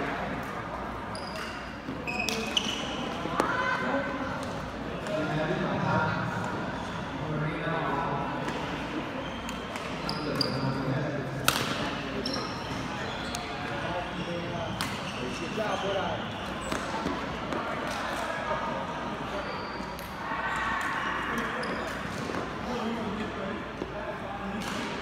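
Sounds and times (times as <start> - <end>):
voices chattering in a hall: 0.0 - 25.0
shoes squeaking on court floor: 1.1 - 3.2, 9.2 - 10.9, 11.9 - 17.8, 19.1 - 20.1, 21.4 - 22.8
rackets striking shuttlecock: 11.4 - 12.0.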